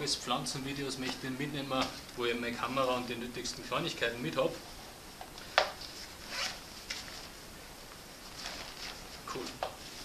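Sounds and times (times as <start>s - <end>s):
zipper pulled on nylon bag: 6.2s - 6.7s.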